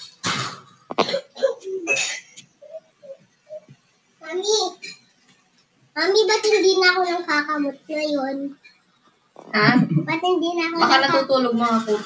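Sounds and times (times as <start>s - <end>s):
person coughing: 0.9s - 2.4s.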